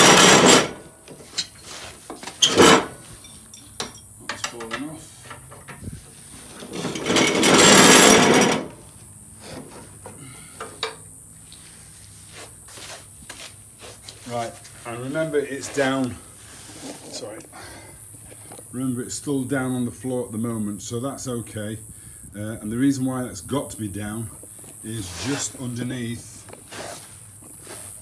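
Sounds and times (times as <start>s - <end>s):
metal parts knocking: 0.0s - 0.8s, 6.7s - 8.8s
metal deck scraping on concrete: 0.0s - 3.4s, 4.3s - 10.9s, 11.7s - 17.2s, 24.8s - 28.0s.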